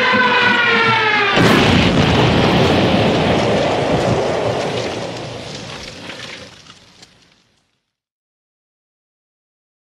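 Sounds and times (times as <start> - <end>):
explosion rumble with crackle: 0.6 - 8.0.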